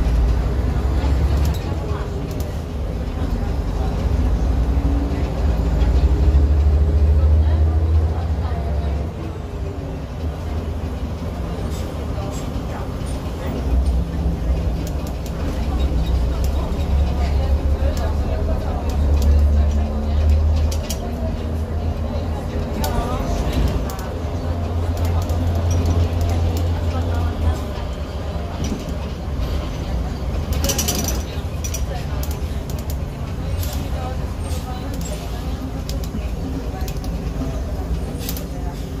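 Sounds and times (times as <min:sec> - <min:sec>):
bus diesel engine drone: 0:00.0 - 0:39.0
sharp rattles and clicks: 0:12.6 - 0:21.1, 0:28.6 - 0:38.6.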